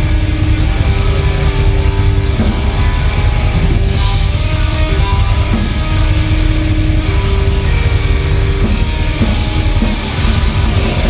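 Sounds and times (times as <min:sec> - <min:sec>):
metal band playing live: 0:00.0 - 0:11.0.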